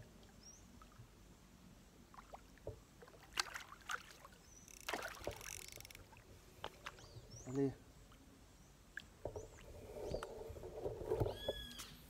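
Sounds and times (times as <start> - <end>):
fish splashing in water: 2.1 - 7.0.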